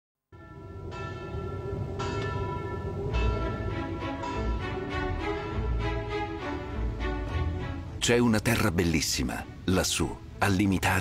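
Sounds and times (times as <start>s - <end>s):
bell ringing: 0.4s - 6.0s
low hum: 0.4s - 8.0s.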